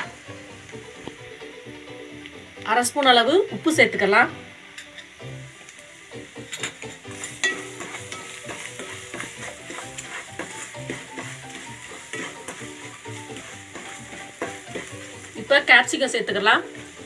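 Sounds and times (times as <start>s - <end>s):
onions sizzling in oil: 0.0s - 17.0s
spatula scraping pan: 6.4s - 15.9s.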